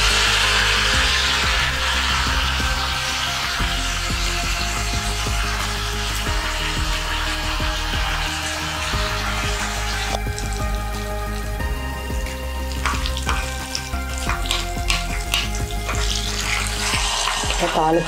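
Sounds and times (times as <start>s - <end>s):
background music: 0.0s - 18.0s
leaves sizzling in hot oil: 0.0s - 18.0s.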